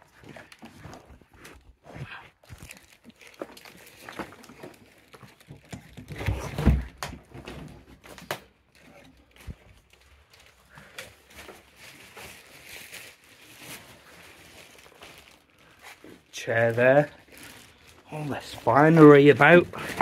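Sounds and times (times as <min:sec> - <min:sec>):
small clicks and rustles: 0:00.0 - 0:06.3, 0:06.9 - 0:20.0.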